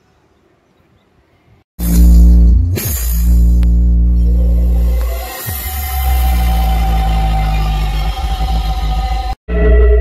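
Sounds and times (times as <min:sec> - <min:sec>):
loud bass-heavy music in a car: 0:01.8 - 0:09.4.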